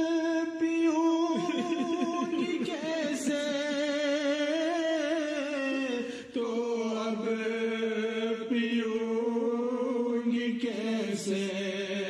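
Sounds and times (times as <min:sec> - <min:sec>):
person chanting verse: 0:00.0 - 0:12.0.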